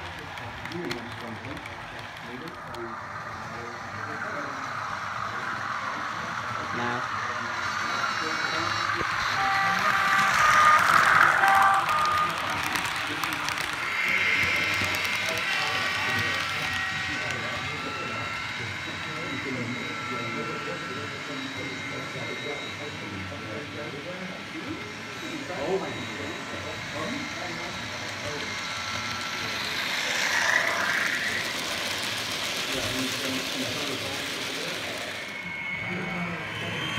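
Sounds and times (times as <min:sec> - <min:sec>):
steady tones: 0:00.0 - 0:24.0, 0:24.9 - 0:36.9
indistinct voices: 0:00.0 - 0:36.9
model train running on track: 0:00.0 - 0:36.9.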